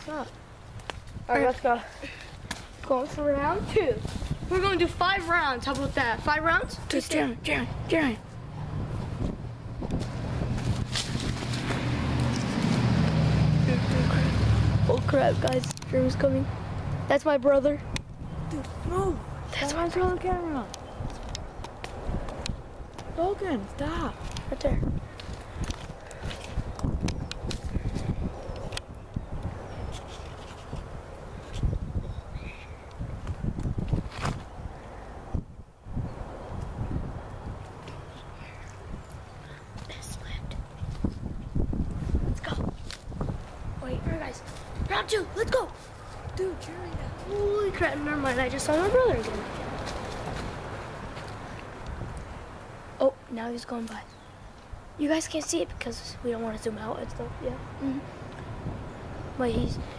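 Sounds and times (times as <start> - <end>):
car approaching: 7.6 - 20.6.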